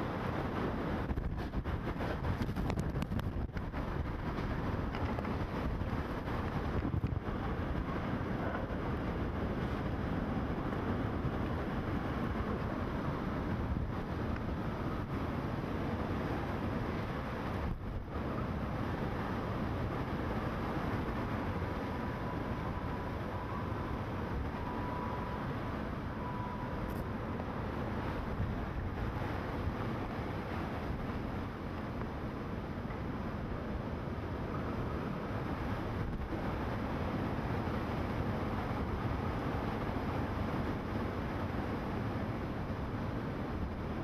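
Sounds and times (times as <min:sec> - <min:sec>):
strong wind buffeting microphone: 0:00.0 - 0:44.0.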